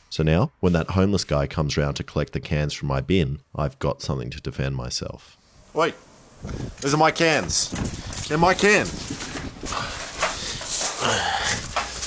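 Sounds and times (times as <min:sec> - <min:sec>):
footsteps on gravel: 0:07.4 - 0:12.0.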